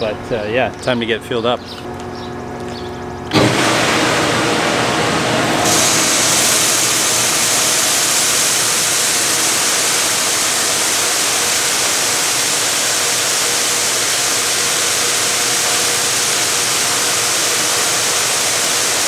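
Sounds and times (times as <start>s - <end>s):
faint motor hum: 0.0s - 19.0s
hiss of seed flow: 3.3s - 19.0s.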